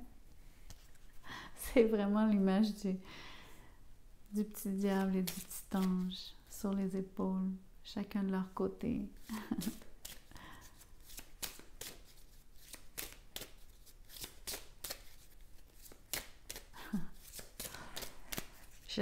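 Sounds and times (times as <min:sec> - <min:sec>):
cards being shuffled: 0:00.6 - 0:01.2, 0:04.8 - 0:06.2, 0:09.2 - 0:19.0.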